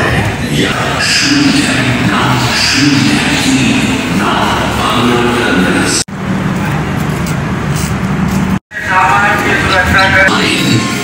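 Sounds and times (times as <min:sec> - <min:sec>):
railway platform hum and rumble: 0:00.0 - 0:11.0.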